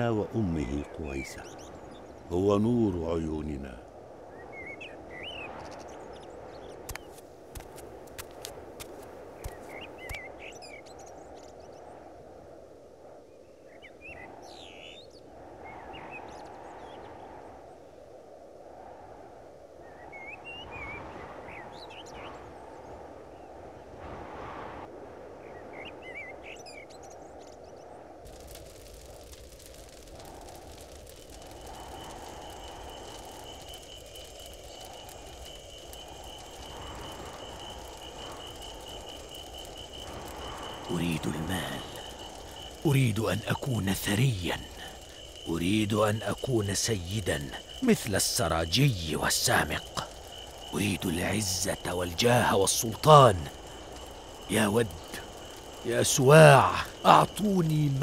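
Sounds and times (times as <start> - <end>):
low wind rush: 0.0 - 58.0.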